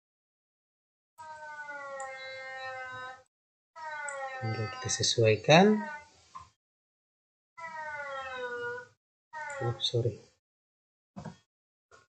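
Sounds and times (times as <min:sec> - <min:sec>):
cat meowing: 0:01.2 - 0:06.1, 0:07.6 - 0:09.9.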